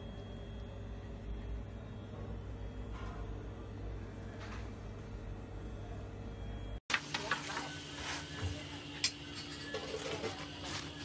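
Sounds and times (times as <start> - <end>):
steady low hum: 0.0 - 6.8.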